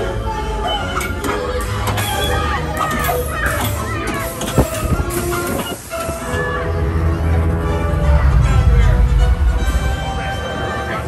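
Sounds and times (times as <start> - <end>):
ride vehicle rattling on track: 0.6 - 11.0.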